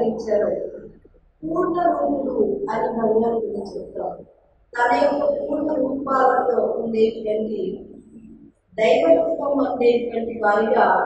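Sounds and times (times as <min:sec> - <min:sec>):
woman speaking: 0:00.0 - 0:04.2, 0:04.8 - 0:11.0.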